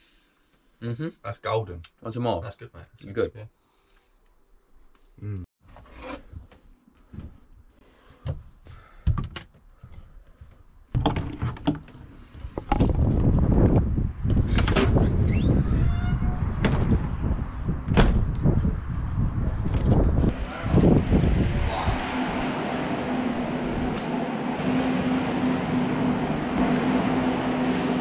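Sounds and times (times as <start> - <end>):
wind on microphone: 12.4 - 22.5
caravan door knocks and clicks: 17.9 - 18.4.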